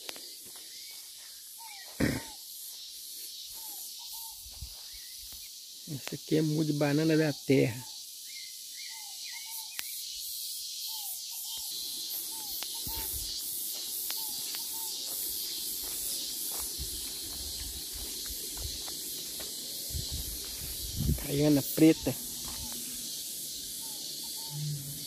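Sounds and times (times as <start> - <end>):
steady high-pitched hiss: 0.0 - 25.0.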